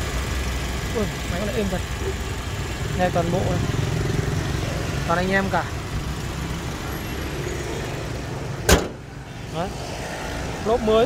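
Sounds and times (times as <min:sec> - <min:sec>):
car engine idling: 0:00.0 - 0:09.8
car bonnet slammed shut: 0:08.6 - 0:09.1.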